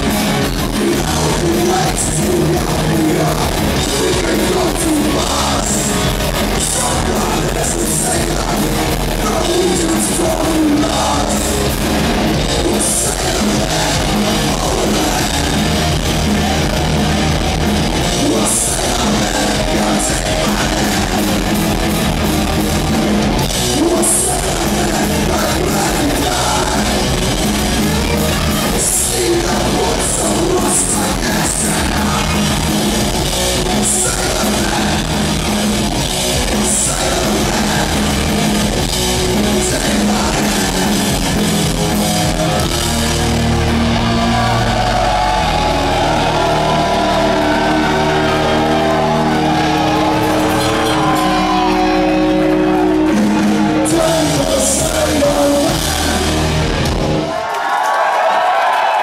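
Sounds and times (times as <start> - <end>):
punk rock band playing: 0.0 - 57.6
crowd noise: 0.0 - 59.0
shouted vocals: 0.0 - 59.0.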